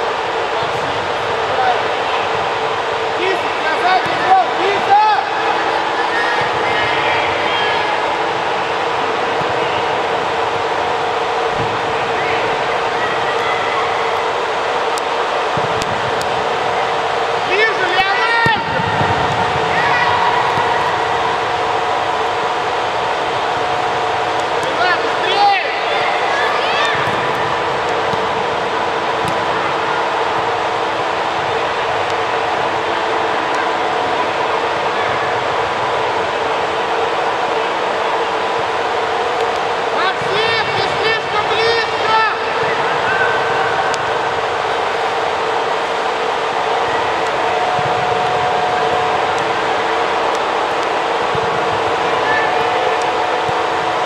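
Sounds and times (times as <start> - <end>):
indoor hall hum and hiss: 0.0 - 54.0
young players shouting: 3.1 - 10.0, 15.1 - 31.0, 39.9 - 45.3.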